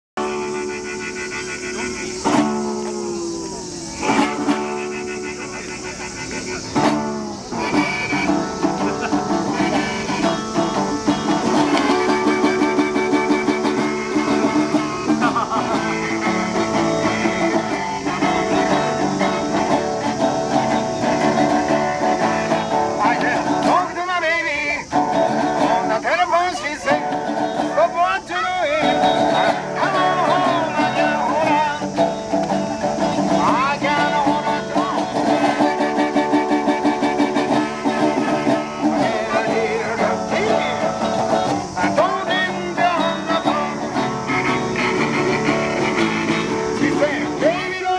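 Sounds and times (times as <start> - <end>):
harmonica long notes: 0.2 - 23.8, 26.9 - 47.9
resonator guitar strumming: 0.2 - 47.9.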